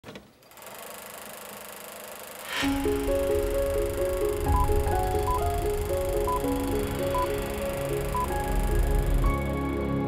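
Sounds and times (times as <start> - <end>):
mechanical whirr: 0.1 - 9.5.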